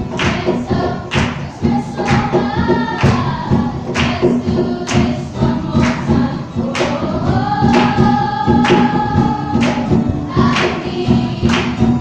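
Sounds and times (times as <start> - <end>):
group singing: 0.0 - 12.0
music with steady beat: 0.0 - 12.0.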